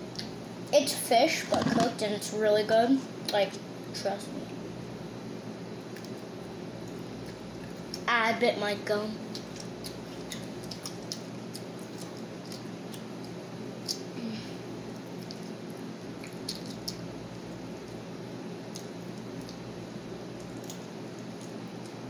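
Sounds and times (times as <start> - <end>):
steady low hum: 0.0 - 22.0
chewing with wet mouth smacks: 5.9 - 8.1, 9.2 - 14.1, 14.9 - 19.7, 20.3 - 22.0.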